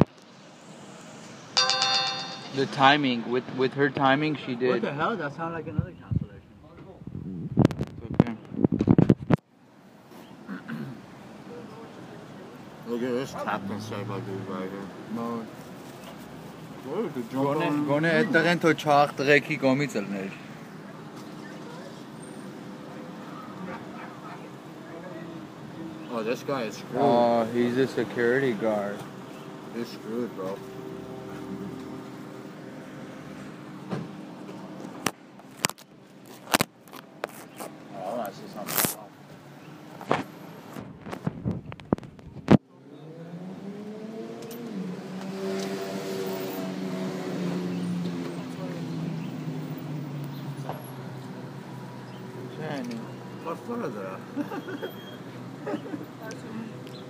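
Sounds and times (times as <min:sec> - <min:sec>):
traffic hum: 0:00.0 - 0:57.0.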